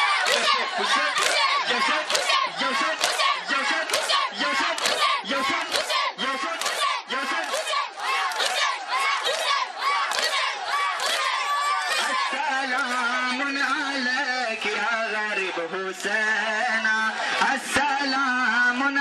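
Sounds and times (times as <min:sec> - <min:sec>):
rhythmic chest beating: 0:00.0 - 0:15.4
crowd of men chanting: 0:00.0 - 0:19.0.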